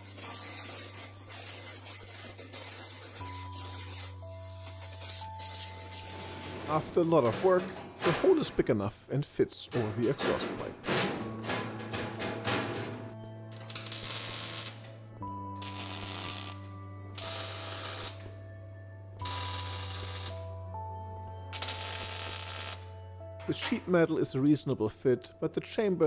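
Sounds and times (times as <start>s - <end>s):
welder welding bursts: 13.6s - 14.8s, 15.6s - 16.6s, 17.2s - 18.2s, 19.2s - 20.3s, 21.6s - 22.8s.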